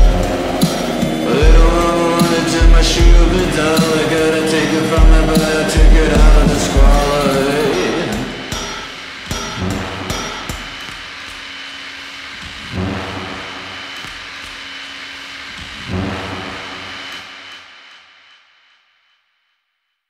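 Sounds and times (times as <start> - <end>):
ringing guitar chords: 0.0 - 11.1
drum hits: 0.0 - 11.4.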